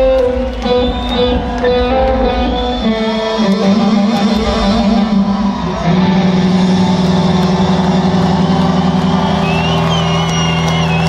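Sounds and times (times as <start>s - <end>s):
high wavering whistle: 8.9s - 11.0s.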